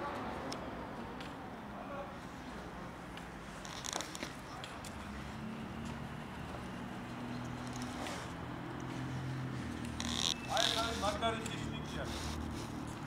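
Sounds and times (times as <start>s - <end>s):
distant city traffic hum: 0.0s - 13.0s.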